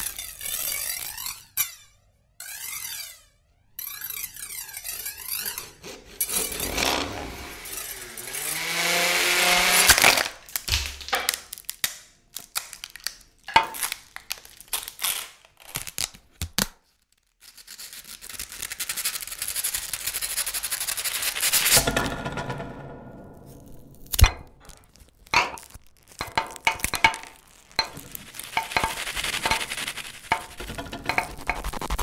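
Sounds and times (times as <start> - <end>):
sharp clicks and knocks: 21.7 - 32.0
grainy noise swell with gliding tones: 27.8 - 32.0.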